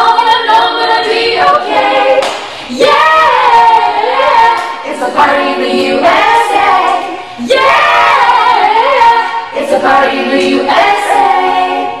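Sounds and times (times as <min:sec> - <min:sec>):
group singing pop song: 0:00.0 - 0:12.0.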